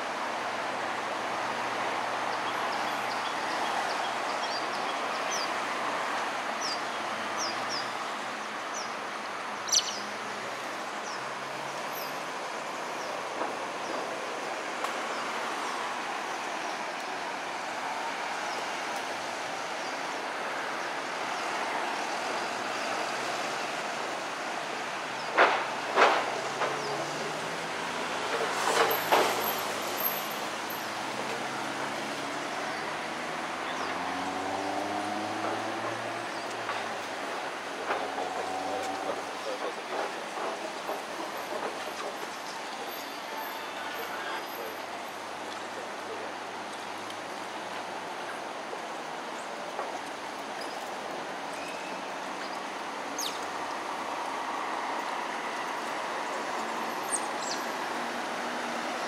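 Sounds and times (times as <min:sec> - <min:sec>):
sharp knocks and clatter: 0:25.3 - 0:26.9, 0:28.3 - 0:29.6, 0:36.6 - 0:42.4.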